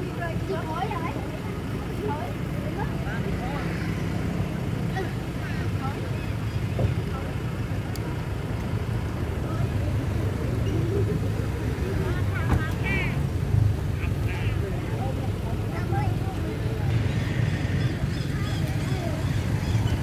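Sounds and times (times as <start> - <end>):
faint voices: 0.0 - 20.0.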